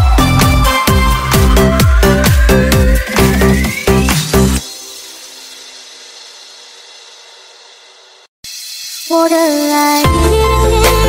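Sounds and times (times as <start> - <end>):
electronic dance music: 0.0 - 5.5
hissy reverb tail with held tones: 2.0 - 10.5.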